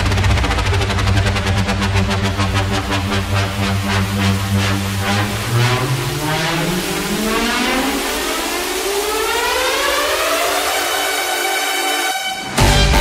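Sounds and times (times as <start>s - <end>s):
bass: 0.0s - 8.8s, 12.5s - 13.0s
electronic dance music drum hits: 0.0s - 13.0s
synth riser sweeping upward: 0.0s - 13.0s.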